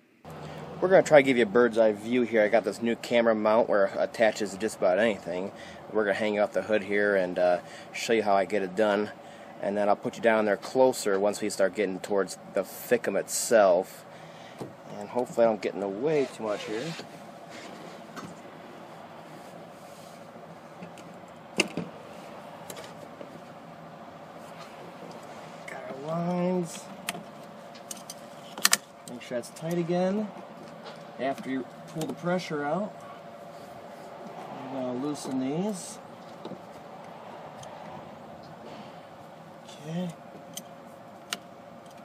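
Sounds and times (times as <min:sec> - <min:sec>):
faint background hum: 0:00.0 - 0:42.0
steady low hiss: 0:00.0 - 0:42.0.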